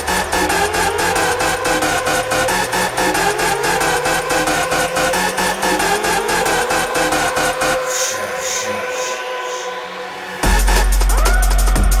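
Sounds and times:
drum and bass music: 0.0s - 12.0s
rising synth sweeps: 0.0s - 12.0s.

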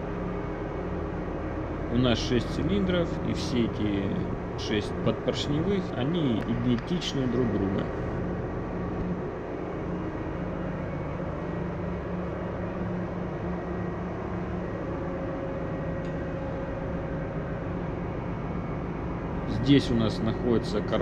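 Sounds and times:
engine-room machinery drone: 0.0s - 21.0s.

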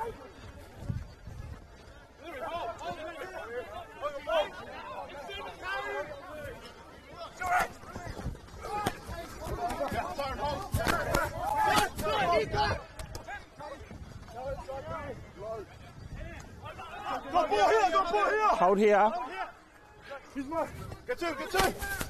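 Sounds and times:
players calling and shouting: 0.0s - 22.0s.

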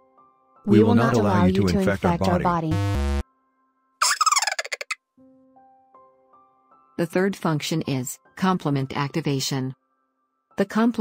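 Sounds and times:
warbling gobble-like cartoon call: 4.0s - 5.0s.

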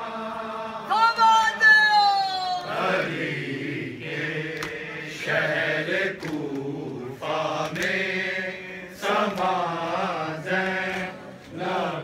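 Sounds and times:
men chanting together: 0.0s - 0.9s, 2.6s - 12.0s.

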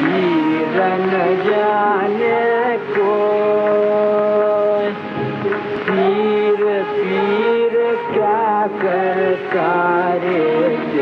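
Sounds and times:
person singing a long note: 0.0s - 5.2s, 5.8s - 11.0s.

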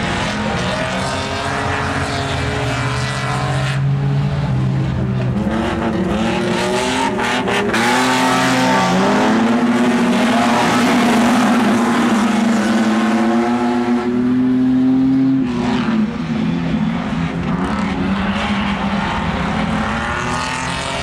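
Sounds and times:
racing car engines: 0.0s - 21.0s.

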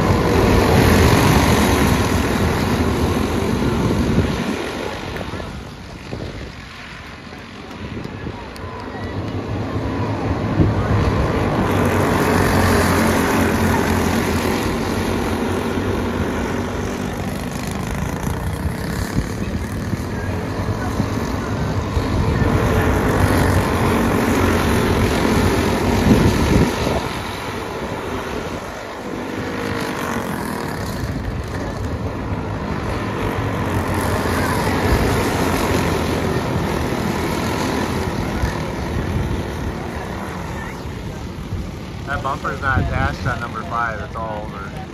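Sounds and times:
go-kart engines racing: 0.0s - 44.9s.

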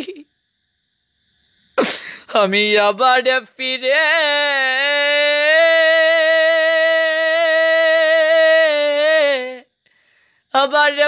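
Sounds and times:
breathy vocal burst: 1.8s - 2.4s
man reciting: 2.2s - 9.7s, 10.5s - 11.0s.

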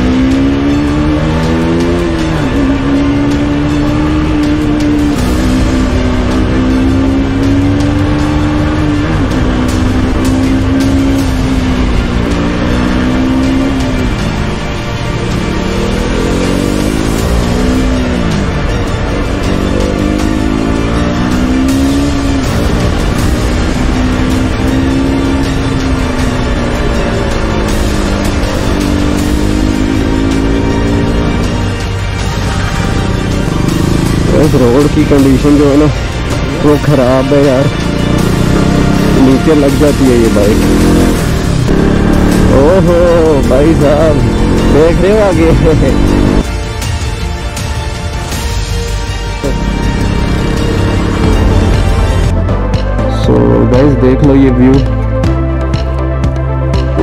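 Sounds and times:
motorcycle engine accelerating: 0.0s - 57.0s
music: 0.0s - 57.0s.

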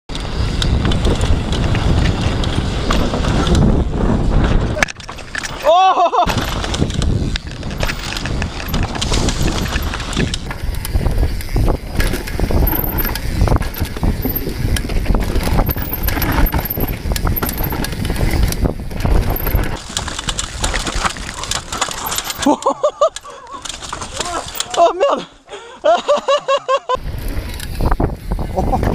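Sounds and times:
tyre and wind rush: 0.1s - 22.6s, 26.9s - 28.9s
bike knocking and rattling: 0.1s - 26.0s, 27.0s - 28.9s.

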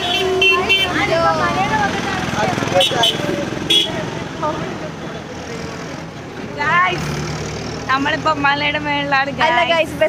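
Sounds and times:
group of people talking: 0.0s - 10.0s.

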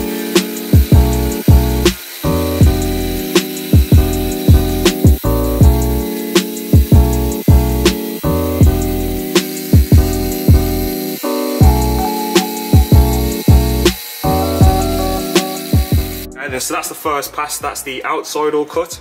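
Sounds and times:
music with bass and drums: 0.0s - 18.0s
man talking: 16.4s - 19.0s.

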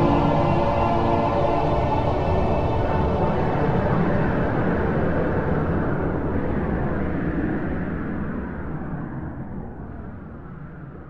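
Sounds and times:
low rumbling noise wash: 0.0s - 11.0s.

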